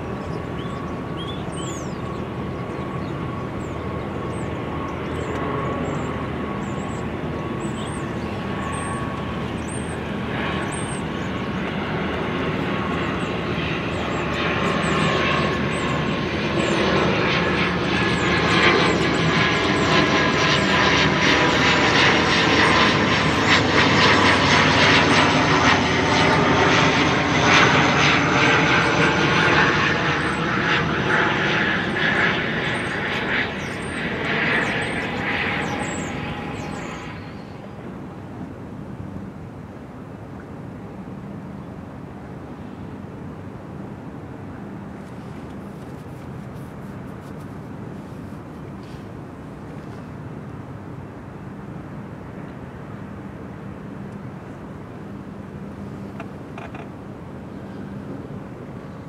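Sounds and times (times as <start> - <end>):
aircraft engine drone: 0.0 - 59.0.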